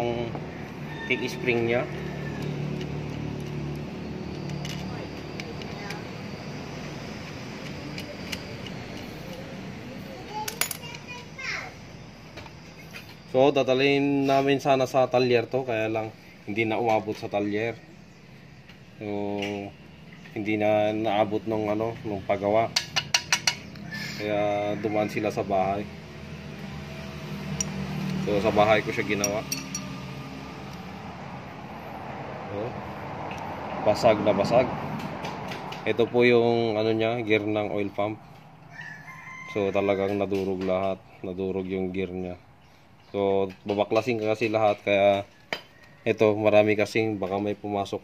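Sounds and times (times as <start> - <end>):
low background hum: 0.0 - 33.8
children's voices: 10.0 - 11.8.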